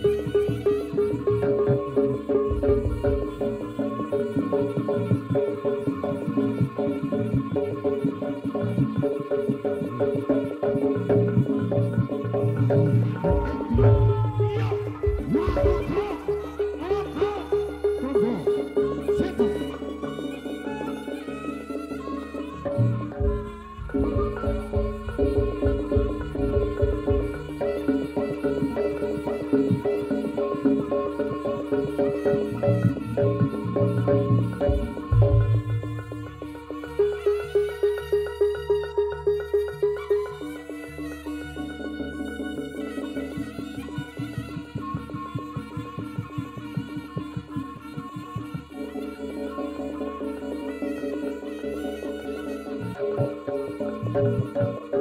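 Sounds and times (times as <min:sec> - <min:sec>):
drums and gongs: 0:00.0 - 0:40.5, 0:41.5 - 0:55.0
gamelan ensemble music: 0:00.0 - 0:55.0
reedy wind melody: 0:00.0 - 0:55.0.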